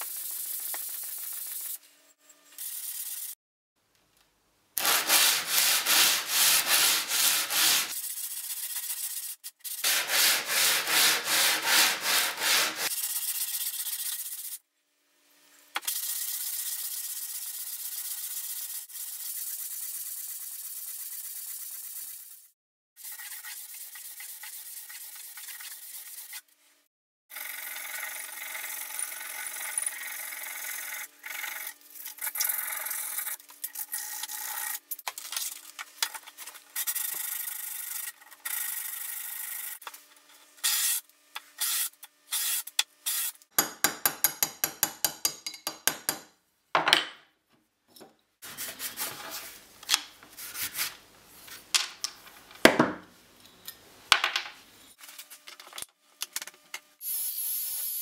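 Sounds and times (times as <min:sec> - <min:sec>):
metal rasping on abrasive strip: 0:04.8 - 0:12.9.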